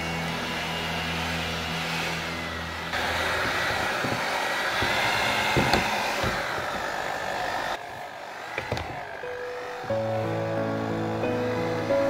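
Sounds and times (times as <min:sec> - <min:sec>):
hand mixer kneading dough: 0:00.0 - 0:12.0.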